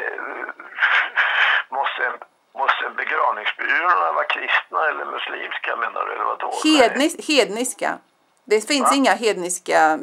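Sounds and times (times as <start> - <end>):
conversation over phone line: 0.0 - 10.0.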